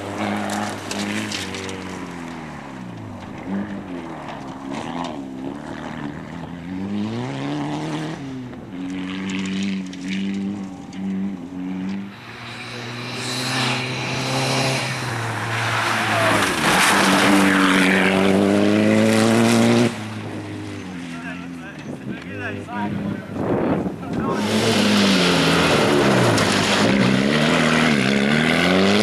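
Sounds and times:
rally car engine revving: 0:00.0 - 0:29.0
tyre and dirt noise: 0:00.0 - 0:29.0.

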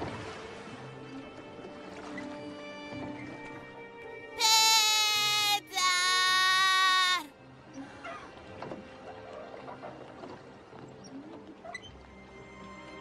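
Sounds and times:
background music: 0:00.0 - 0:13.0
cartoon voice crying out: 0:04.4 - 0:07.3.

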